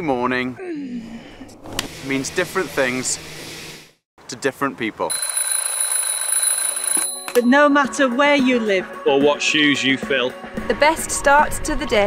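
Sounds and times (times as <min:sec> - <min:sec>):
alarm clock ringing: 0:05.1 - 0:07.8.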